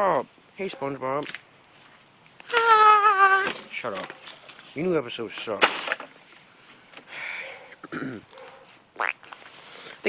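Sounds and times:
soft breathy noise: 0:06.4 - 0:07.9, 0:09.4 - 0:10.0.

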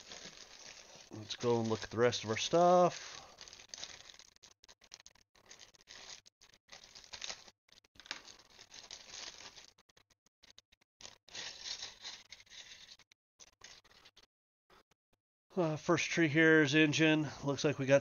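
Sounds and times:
plastic bag crinkling: 0:00.0 - 0:14.2.

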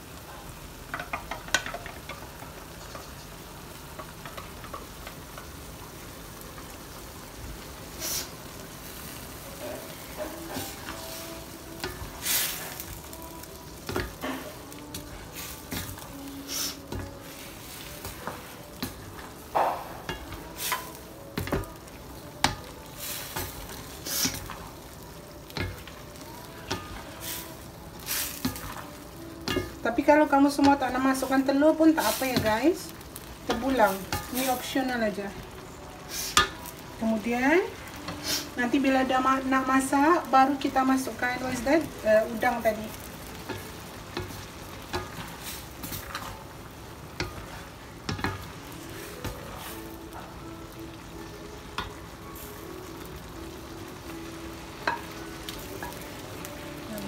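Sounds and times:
sauce simmering and sizzling: 0:00.0 - 0:57.0
spatula scraping wok: 0:07.8 - 0:39.2, 0:40.2 - 0:53.1.

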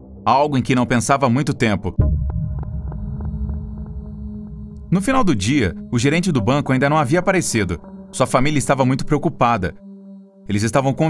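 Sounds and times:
low droning hum: 0:02.0 - 0:08.2.

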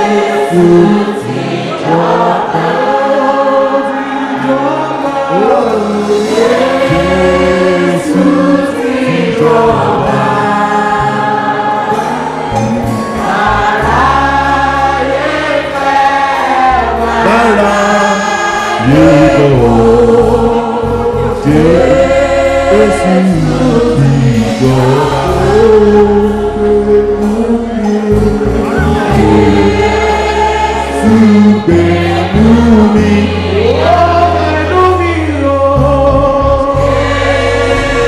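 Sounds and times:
congregation singing a hymn: 0:00.0 - 0:38.0
low bass accompaniment: 0:04.4 - 0:38.0.

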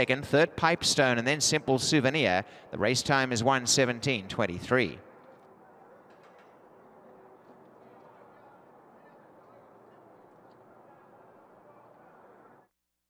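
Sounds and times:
faint broadcast background noise: 0:00.0 - 0:12.7.

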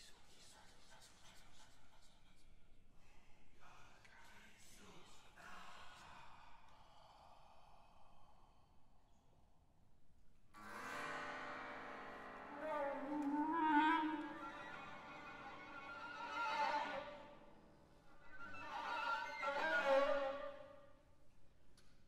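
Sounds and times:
bowed strings chamber music: 0:10.9 - 0:20.6.

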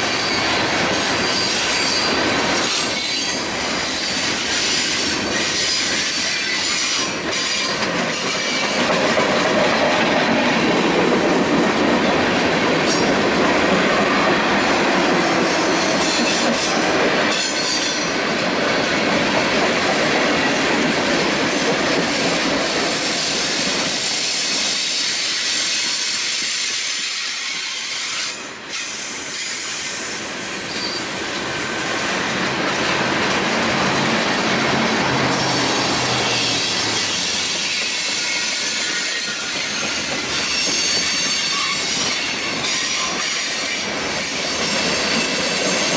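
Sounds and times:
freight train grinding rumble: 0:00.0 - 0:45.9
steel wheels squealing on rail: 0:00.0 - 0:45.9.

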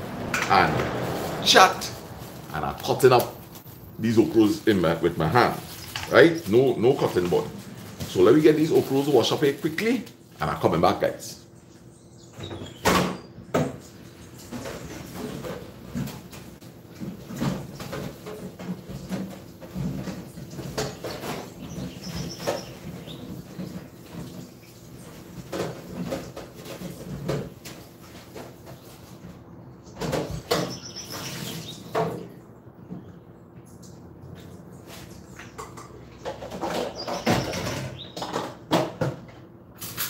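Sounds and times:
vegetables washed in a metal sink: 0:00.0 - 0:11.1, 0:13.7 - 0:29.2.

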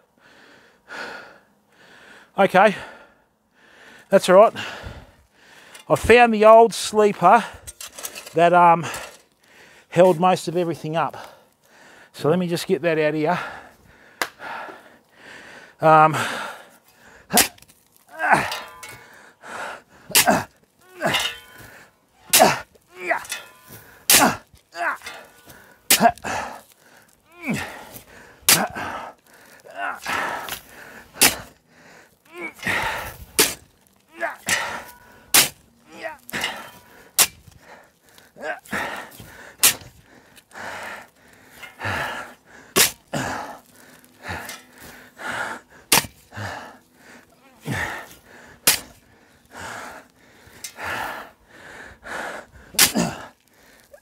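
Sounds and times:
soil thrown off shovel: 0:17.3 - 0:19.1, 0:20.1 - 0:26.6, 0:27.5 - 0:29.0, 0:29.9 - 0:31.5, 0:32.4 - 0:35.6, 0:36.2 - 0:37.6, 0:38.7 - 0:40.0, 0:42.8 - 0:44.9, 0:45.9 - 0:46.2, 0:48.6 - 0:49.0, 0:52.8 - 0:53.2
shovel scraping into sandy soil: 0:30.1 - 0:31.5, 0:32.5 - 0:33.7, 0:42.8 - 0:43.1.

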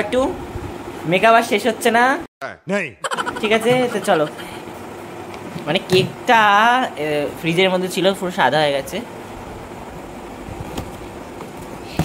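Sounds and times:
steady background noise: 0:03.0 - 0:12.0.

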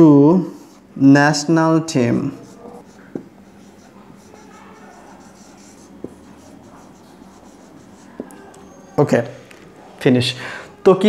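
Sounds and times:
marker writing on whiteboard: 0:02.0 - 0:08.9
marker tap: 0:03.1 - 0:04.4, 0:05.2 - 0:06.5, 0:08.0 - 0:08.4.

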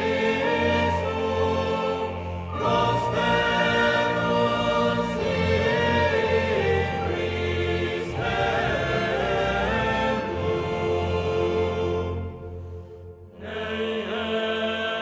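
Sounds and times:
choir singing long notes: 0:00.0 - 0:15.0.

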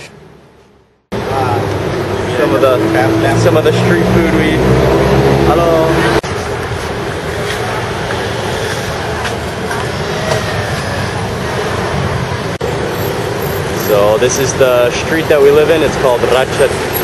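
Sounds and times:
indistinct voices of passers-by: 0:00.0 - 0:17.0
road traffic: 0:00.0 - 0:17.0.

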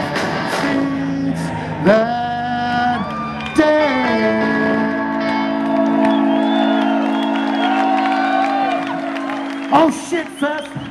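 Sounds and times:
crowd whooping and cheering: 0:00.8 - 0:10.9.

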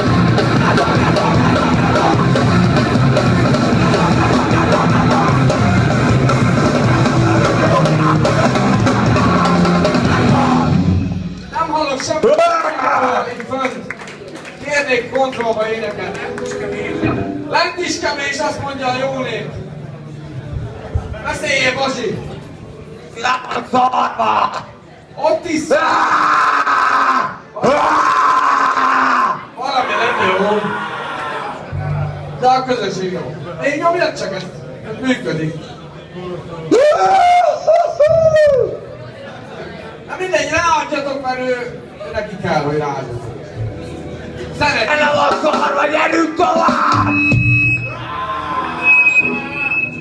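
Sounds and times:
bass guitar: 0:00.0 - 0:11.6, 0:16.0 - 0:17.6
electric guitar: 0:15.9 - 0:17.5.

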